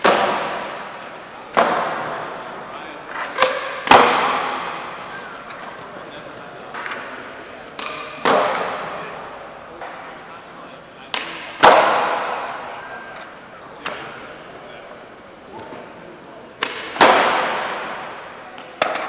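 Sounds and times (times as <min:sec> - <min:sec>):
skateboard landing slap: 0:00.0 - 0:02.3, 0:03.2 - 0:05.8, 0:06.7 - 0:09.0, 0:11.1 - 0:12.7, 0:16.6 - 0:19.0
skateboard tail pop: 0:16.6 - 0:17.9.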